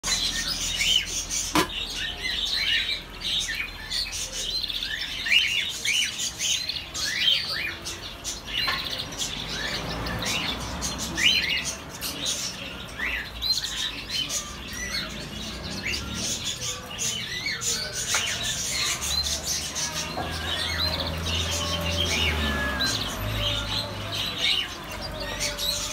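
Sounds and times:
birds chirping: 0.0 - 25.9.

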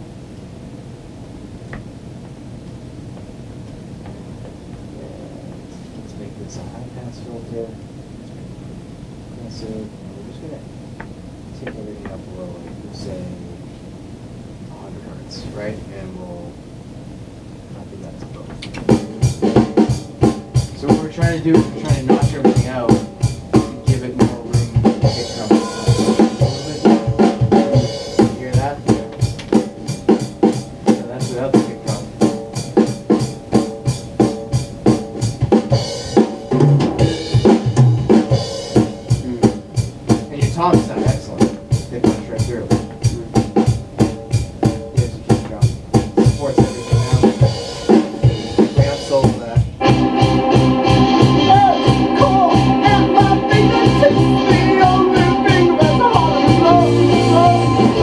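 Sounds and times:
drum kit beat: 18.5 - 58.0
band instruments playing: 18.8 - 58.0.

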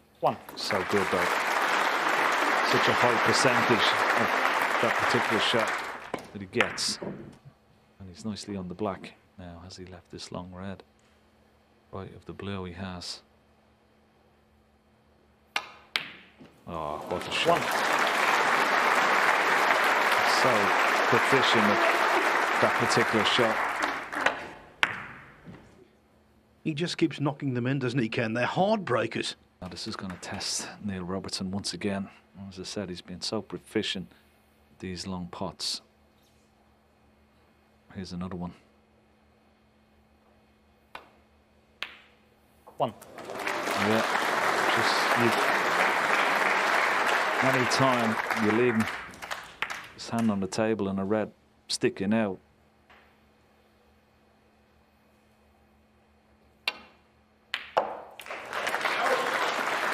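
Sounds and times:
cue ball striking object ball: 24.2 - 25.5, 41.8 - 42.1, 57.5 - 58.1
cue tip clicking cue ball: 56.6 - 57.0.

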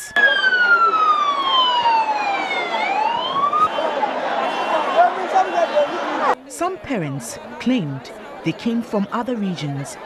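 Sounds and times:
ambulance siren wailing: 0.0 - 6.4
crowd noise: 0.0 - 10.0.

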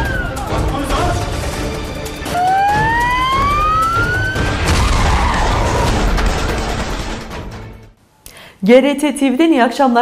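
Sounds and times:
synthesized tone climbing in pitch: 2.3 - 5.5.

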